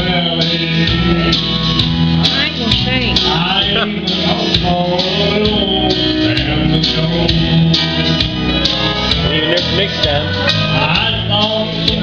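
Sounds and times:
guitar: 0:00.0 - 0:12.0
man singing into a microphone: 0:00.0 - 0:12.0
steady beat: 0:00.0 - 0:12.0.

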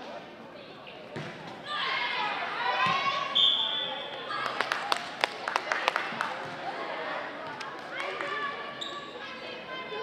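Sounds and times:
voices in a gym: 0:00.0 - 0:10.0.

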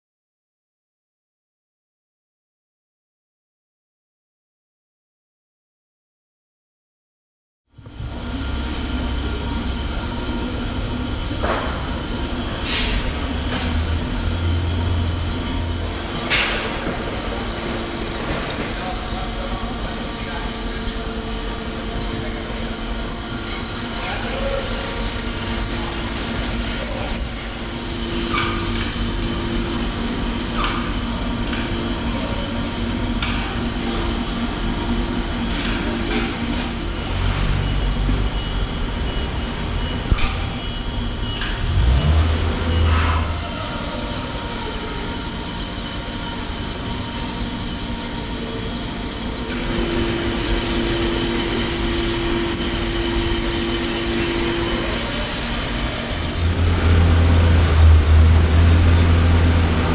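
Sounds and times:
bandsaw sawing steel: 0:41.6 - 0:58.4.

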